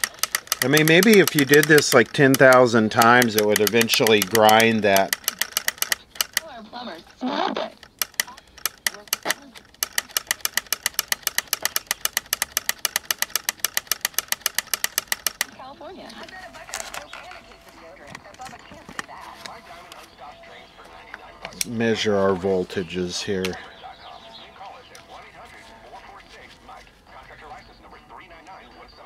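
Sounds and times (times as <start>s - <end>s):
radio power switch clicking: 0.0s - 6.5s, 7.7s - 20.0s
soft handling noises: 15.0s - 23.9s, 24.5s - 28.6s.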